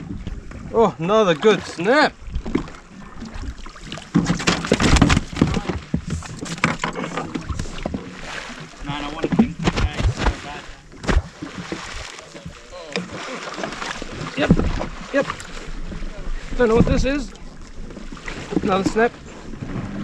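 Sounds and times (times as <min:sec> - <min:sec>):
water sloshing against hull: 0:00.0 - 0:20.0
knocks and handling sounds: 0:04.1 - 0:08.0.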